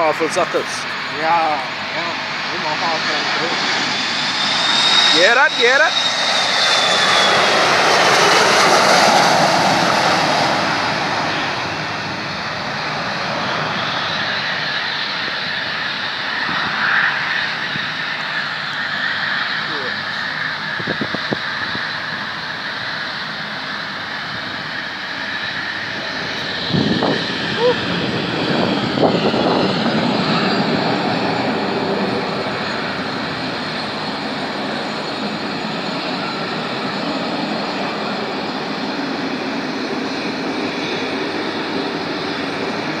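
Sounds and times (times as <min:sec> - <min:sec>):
airliner jet engine roar: 0:00.0 - 0:43.0.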